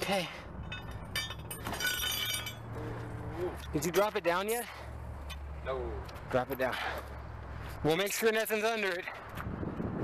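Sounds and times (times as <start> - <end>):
lug wrench clinking on nuts: 0.6 - 2.7.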